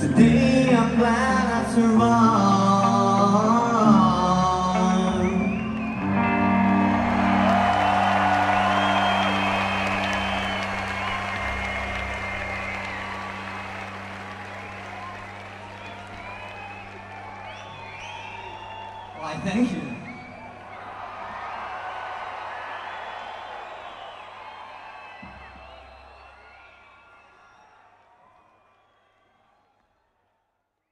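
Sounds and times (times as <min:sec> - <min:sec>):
crowd cheering and whistling: 0:03.9 - 0:29.9.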